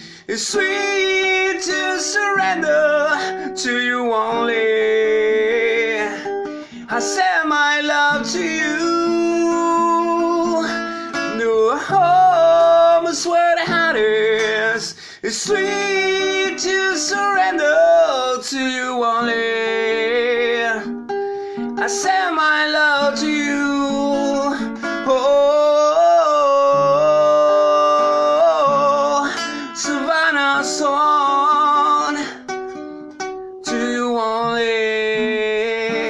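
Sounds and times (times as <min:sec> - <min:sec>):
acoustic guitar strumming: 0:00.0 - 0:36.0.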